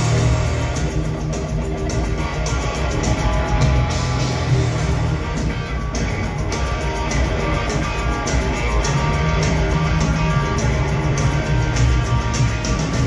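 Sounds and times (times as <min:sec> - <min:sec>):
bass guitar: 0:00.0 - 0:13.0
electric guitar: 0:00.0 - 0:13.0
steady drum beat: 0:00.0 - 0:13.0.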